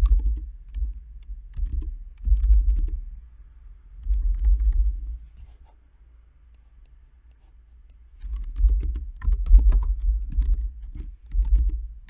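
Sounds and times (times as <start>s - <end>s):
keyboard typing clicks: 0.0s - 3.0s, 4.0s - 5.0s, 8.2s - 11.8s.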